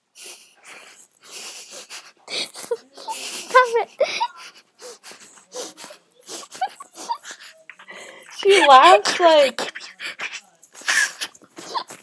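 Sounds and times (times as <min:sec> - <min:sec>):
woman giggling: 0:02.3 - 0:04.6, 0:06.2 - 0:09.5.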